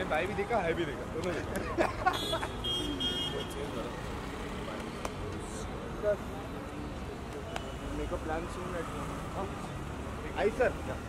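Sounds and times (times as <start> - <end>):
cars idling and passing: 0.0 - 11.0.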